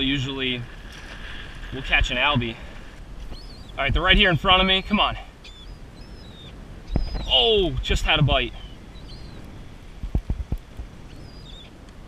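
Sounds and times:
water noise: 0:00.0 - 0:12.0
wind: 0:00.0 - 0:12.0
high seabird calls: 0:01.0 - 0:09.9, 0:11.0 - 0:11.8.

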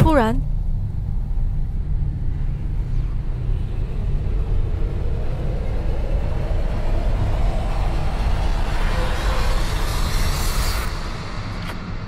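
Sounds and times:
low suspense drone: 0:00.0 - 0:12.0.

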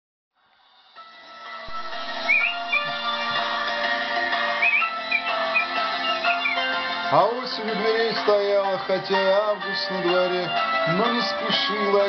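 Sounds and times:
high whistle-like melody: 0:01.5 - 0:07.0
sustained synth chords: 0:01.7 - 0:07.0.

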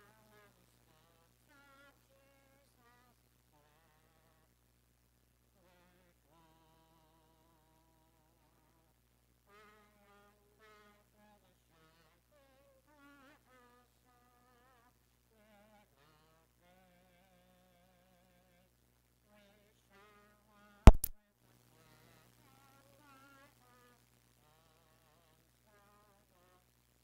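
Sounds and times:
faint singing: 0:00.0 - 0:04.6, 0:05.5 - 0:27.0
loud crackling pop: 0:20.9 - 0:21.2.

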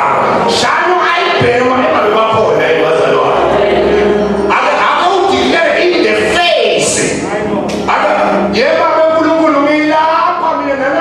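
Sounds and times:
man preaching into a microphone: 0:00.0 - 0:11.0.

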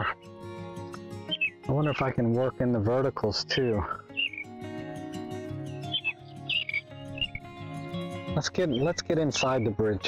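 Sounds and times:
soft background music: 0:00.0 - 0:10.0
bird chirps: 0:01.2 - 0:02.1, 0:04.1 - 0:04.6, 0:05.2 - 0:07.6, 0:08.6 - 0:09.9.

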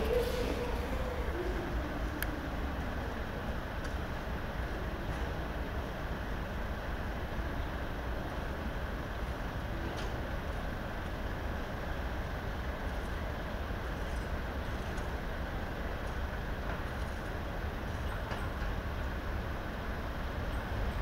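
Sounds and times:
train rumbling along track: 0:00.0 - 0:21.0.

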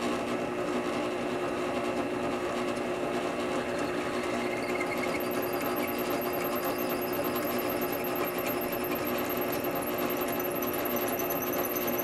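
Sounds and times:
drill press motor running: 0:03.5 - 0:12.0.

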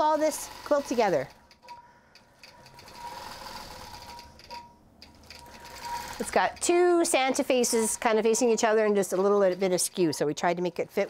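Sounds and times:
quilting machine humming: 0:02.7 - 0:04.3, 0:05.3 - 0:09.5.

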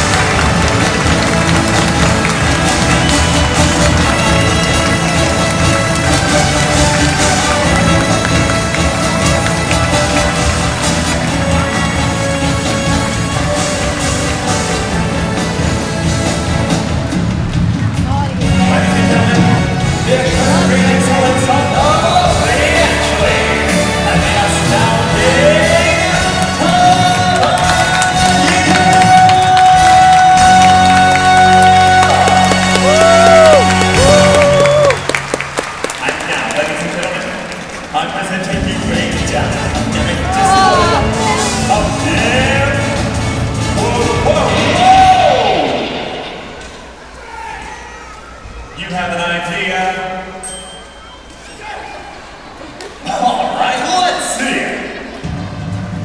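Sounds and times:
live band music: 0:00.0 - 0:34.8, 0:38.6 - 0:46.8.

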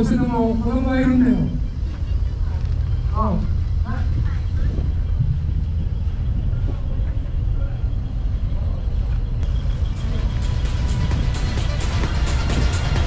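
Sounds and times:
low steady rumble: 0:00.0 - 0:13.0
upbeat background music: 0:09.4 - 0:13.0.

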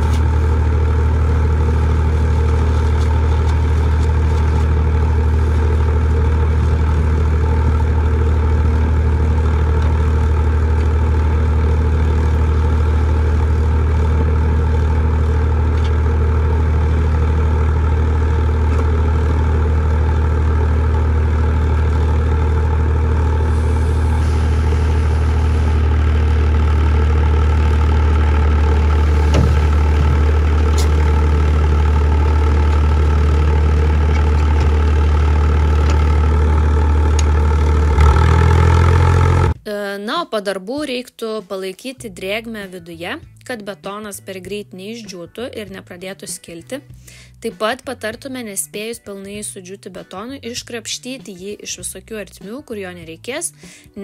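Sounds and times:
pump engine humming: 0:00.0 - 0:39.6, 0:47.0 - 0:47.4.

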